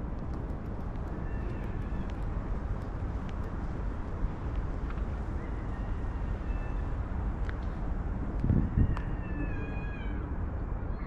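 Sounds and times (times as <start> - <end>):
distant traffic: 0.0 - 6.4
wind rumble on microphone: 0.0 - 11.0.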